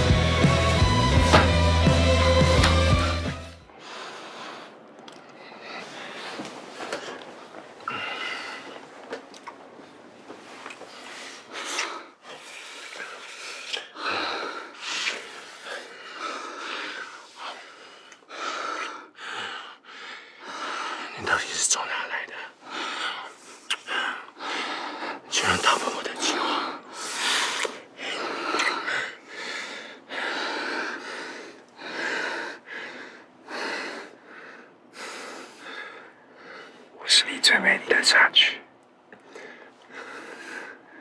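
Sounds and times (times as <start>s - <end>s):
men breathing heavily: 2.4s - 21.2s, 22.4s - 37.0s, 39.1s - 41.0s.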